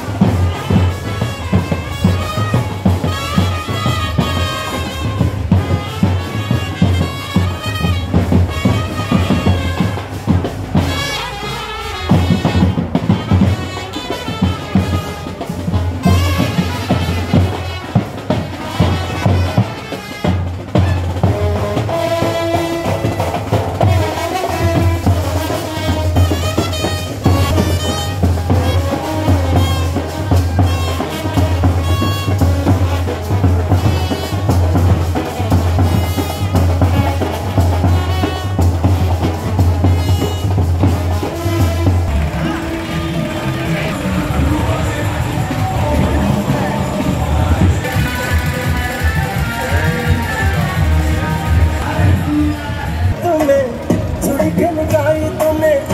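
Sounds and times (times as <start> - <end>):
brass band trumpets and horns: 0.0 - 55.9
loud drum beat: 0.0 - 55.9.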